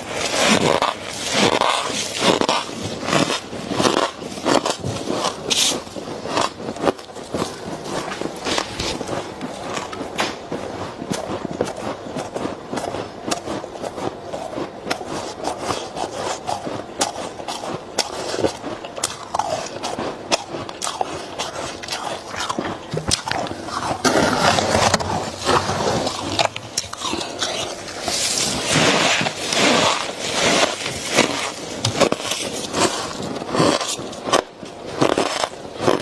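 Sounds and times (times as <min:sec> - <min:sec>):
gloved hands scraping frost: 0:00.0 - 0:09.7, 0:23.4 - 0:36.0
ice being chewed: 0:00.0 - 0:36.0.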